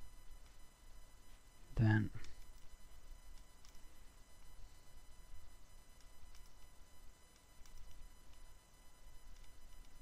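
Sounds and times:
high-pitched electrical whine: 0.0 - 10.0
spoken word: 1.8 - 2.3
faint clicks: 3.3 - 3.8, 9.2 - 10.0.

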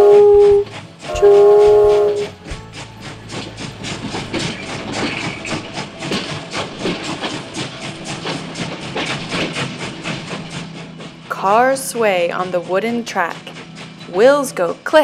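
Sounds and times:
train wheels clattering on rails: 0.0 - 15.0.

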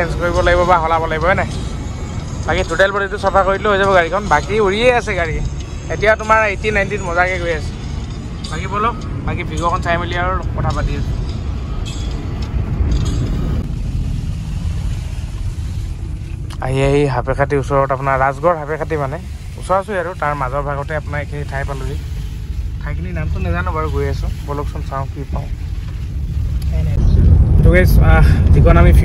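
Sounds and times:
car engine and tyre rumble: 0.0 - 29.0.

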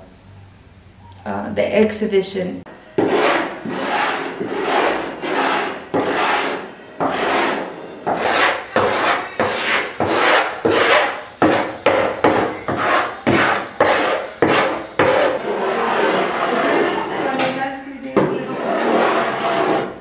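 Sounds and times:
wood rasping by hand: 3.0 - 17.3, 18.4 - 20.0.

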